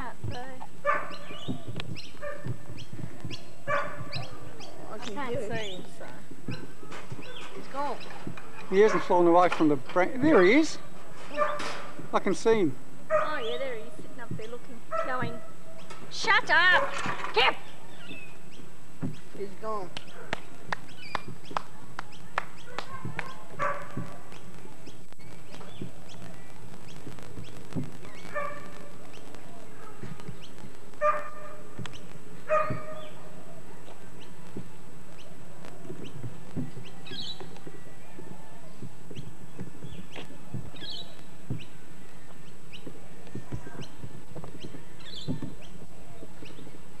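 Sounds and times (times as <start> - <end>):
dog barking: 0.8 - 2.6, 3.6 - 4.5, 8.7 - 9.3, 11.2 - 11.8, 13.1 - 13.6, 14.9 - 16.0, 16.7 - 17.1, 20.1 - 20.5, 21.7 - 24.3, 28.3 - 28.9, 29.7 - 30.2, 31.0 - 31.7, 32.4 - 33.6.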